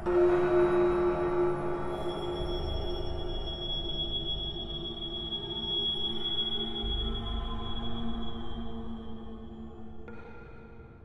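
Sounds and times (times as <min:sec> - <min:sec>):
high ringing tone: 0:01.5 - 0:05.3.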